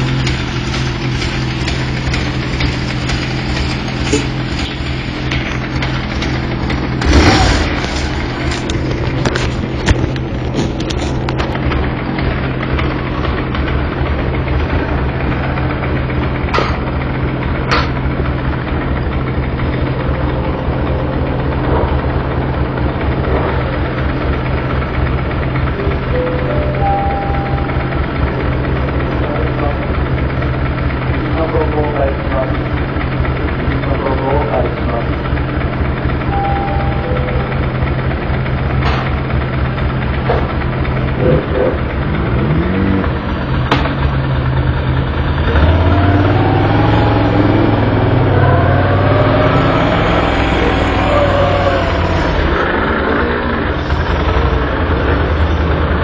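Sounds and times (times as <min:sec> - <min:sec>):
motorcycle engine idling and revving: 0:00.0 - 0:56.0.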